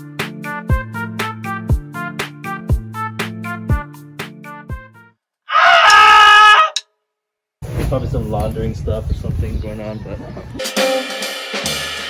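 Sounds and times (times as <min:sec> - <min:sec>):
person screaming: 0:05.5 - 0:06.8
drum kit playing: 0:10.6 - 0:12.0.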